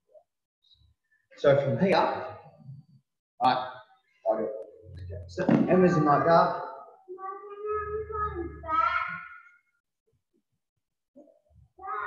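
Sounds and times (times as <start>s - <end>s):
child's sing-song voice: 7.1s - 9.4s, 11.8s - 12.0s.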